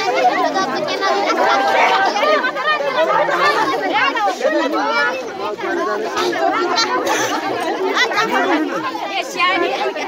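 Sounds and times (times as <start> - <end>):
hubbub of overlapping voices: 0.0 - 10.0.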